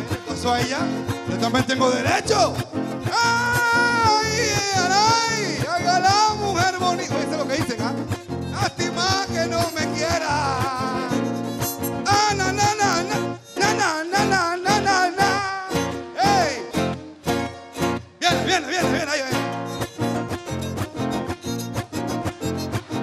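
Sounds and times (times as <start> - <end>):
strummed acoustic guitars: 0.0 - 23.0
violin melody: 0.0 - 23.0.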